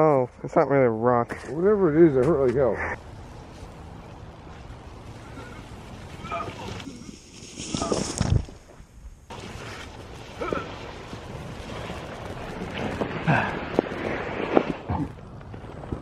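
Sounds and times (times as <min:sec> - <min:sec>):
steady rushing noise: 0:02.5 - 0:08.2, 0:09.2 - 0:16.0.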